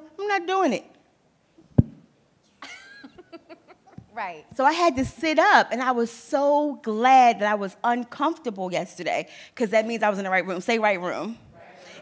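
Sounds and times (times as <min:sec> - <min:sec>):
microphone handling thump: 0:01.6 - 0:02.1.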